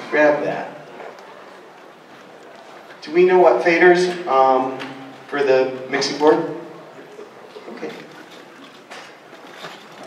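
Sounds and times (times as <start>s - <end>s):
crowded room background noise: 0.0s - 10.0s.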